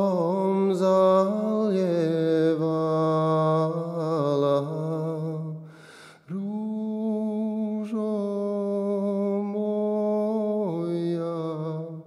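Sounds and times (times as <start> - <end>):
man singing long held note: 6.3 - 12.0.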